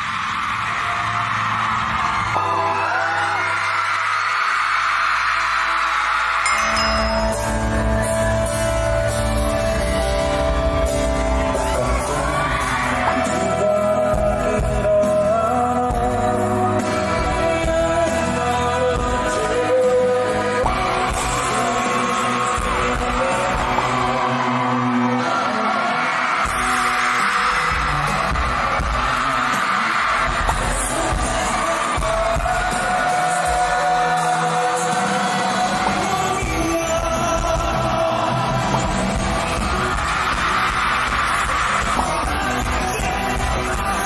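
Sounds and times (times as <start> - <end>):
live pop-rock band: 0.0 - 44.0
male lead singer: 6.5 - 44.0.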